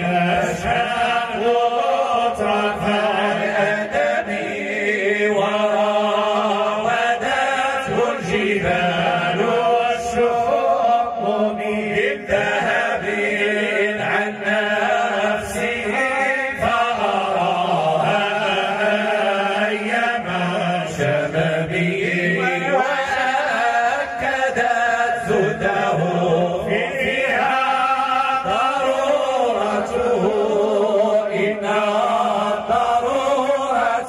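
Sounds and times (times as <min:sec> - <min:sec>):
men chanting unaccompanied: 0:00.0 - 0:34.0.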